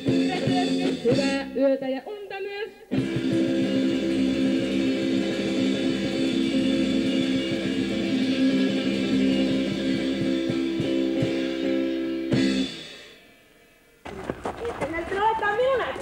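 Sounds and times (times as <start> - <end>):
live band playing: 0.0 - 1.6, 2.9 - 13.3
electric guitar chord ringing: 3.0 - 14.0.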